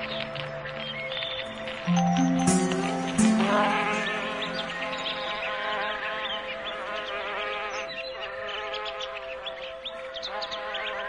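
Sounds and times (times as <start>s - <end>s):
birds chirping and whistling: 0.0s - 11.0s
slow relaxation music: 0.0s - 11.0s.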